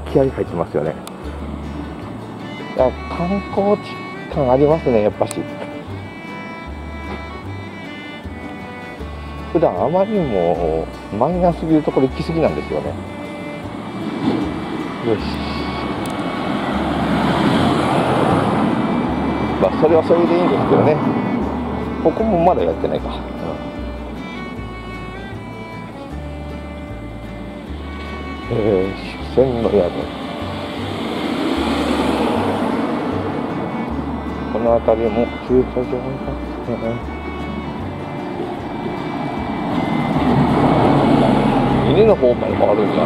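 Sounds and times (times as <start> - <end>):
minivan approaching: 0.0 - 43.0
road traffic rumble: 0.0 - 43.0.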